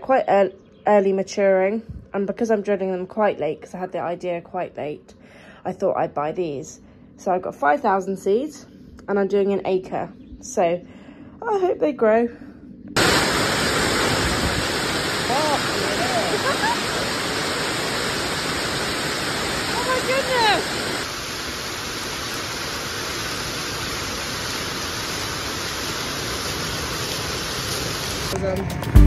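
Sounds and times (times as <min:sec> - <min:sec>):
steady rushing noise: 0:12.7 - 0:29.0
faint rising-and-falling calls: 0:13.0 - 0:22.3.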